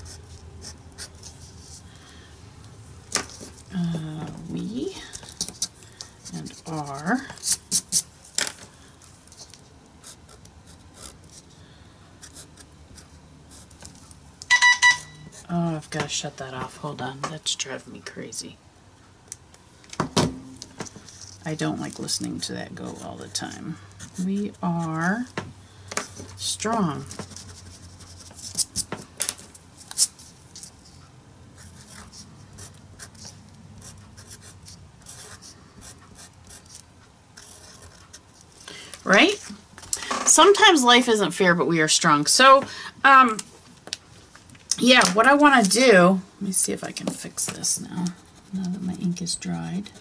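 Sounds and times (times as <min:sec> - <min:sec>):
faint steady hum: 0:00.0 - 0:50.0
electronic alert beeps: 0:14.5 - 0:15.3
marker and paper clicks: 0:27.1 - 0:30.8.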